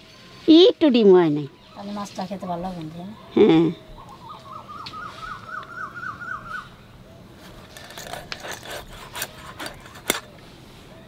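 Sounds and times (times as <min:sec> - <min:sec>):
bird calling rising notes: 0:03.1 - 0:07.6.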